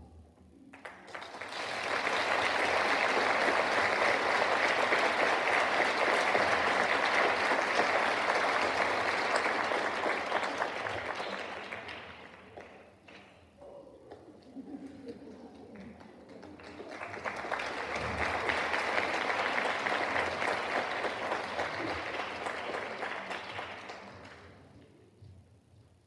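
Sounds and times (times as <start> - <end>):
audience applause: 0.8 - 12.8, 16.0 - 24.6.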